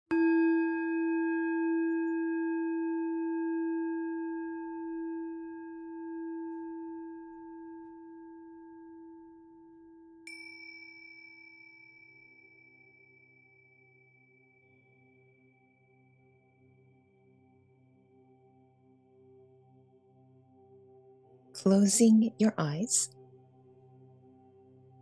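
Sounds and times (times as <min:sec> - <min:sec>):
singing bowl ringing: 0:10.3 - 0:13.6.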